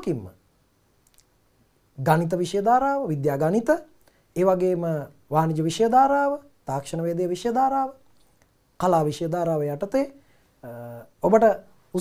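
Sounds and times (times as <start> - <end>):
man speaking: 0.0 - 0.4, 2.0 - 8.0, 8.8 - 12.0
faint small clicks: 1.0 - 1.4, 8.1 - 8.6.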